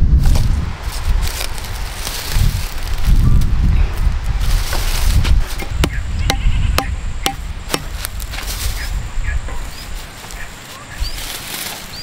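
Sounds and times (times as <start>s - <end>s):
wind rumble on microphone: 0.0s - 12.0s
stake knocked into soil: 5.5s - 8.2s.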